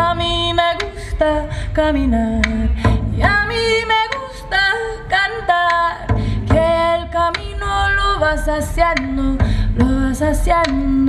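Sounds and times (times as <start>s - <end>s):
woman singing: 0.0s - 11.0s
frame drum: 2.3s - 4.3s, 6.0s - 11.0s.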